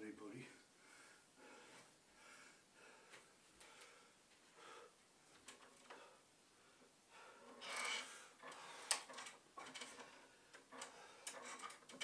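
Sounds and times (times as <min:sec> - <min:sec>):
person breathing: 0:00.7 - 0:05.0, 0:05.8 - 0:09.1, 0:10.0 - 0:11.4
pull-up bar clicking and creaking: 0:05.4 - 0:06.1, 0:07.4 - 0:12.0.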